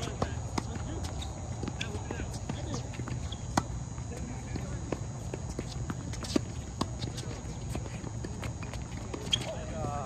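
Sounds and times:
tennis balls bouncing on court: 0:00.0 - 0:10.0
tennis balls struck by rackets: 0:00.0 - 0:10.0.

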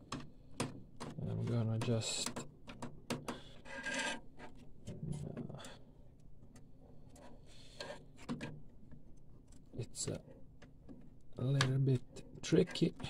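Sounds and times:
plastic and metal parts scraping: 0:00.1 - 0:05.7.

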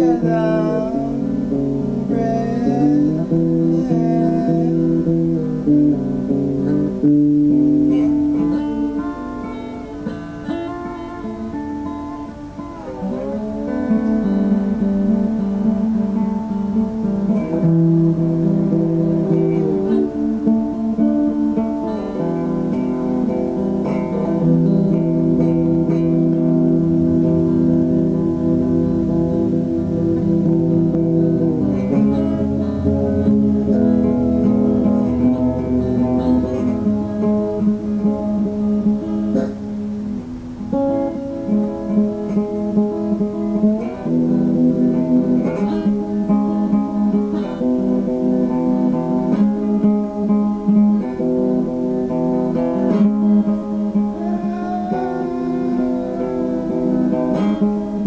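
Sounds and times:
acoustic guitar chords strummed: 0:00.0 - 0:58.0.

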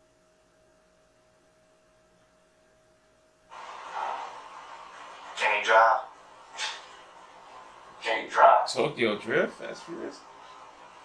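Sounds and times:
steady hiss of background noise: 0:00.0 - 0:11.0.

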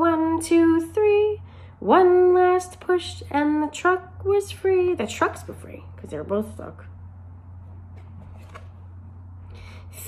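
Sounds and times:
steady low hum: 0:00.0 - 0:10.0
cardboard page turning: 0:08.0 - 0:08.9.

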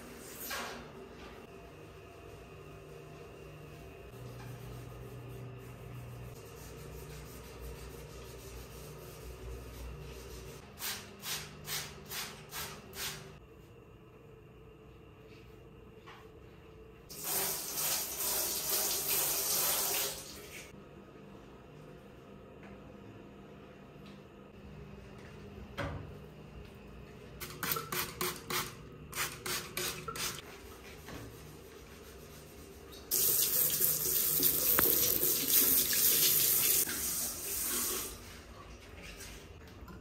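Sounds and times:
water splashing into washbasin: 0:17.1 - 0:20.7, 0:33.1 - 0:39.2
sink tap running: 0:33.1 - 0:38.1.

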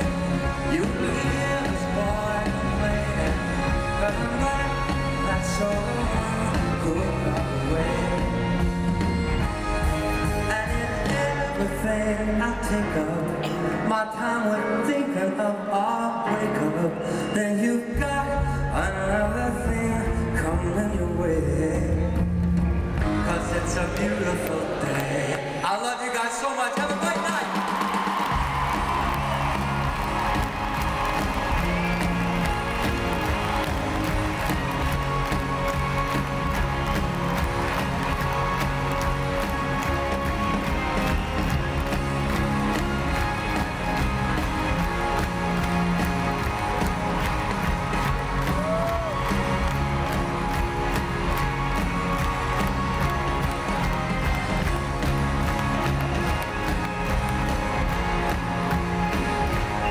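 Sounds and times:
crowd cheering and clapping: 0:00.0 - 0:12.1, 0:22.4 - 0:59.9
big band playing upbeat music: 0:00.0 - 0:59.9.

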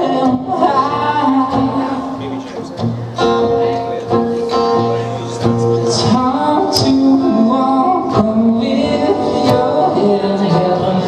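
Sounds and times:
people singing: 0:00.0 - 0:02.4, 0:05.8 - 0:11.0
acoustic guitar strumming: 0:00.0 - 0:11.0.

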